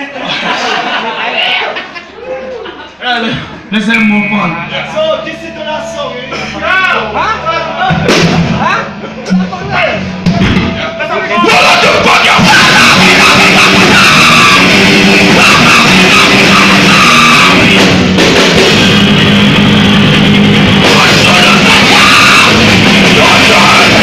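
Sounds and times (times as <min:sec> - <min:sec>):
voices: 0:00.0 - 0:17.7
live rock band playing: 0:04.4 - 0:24.0.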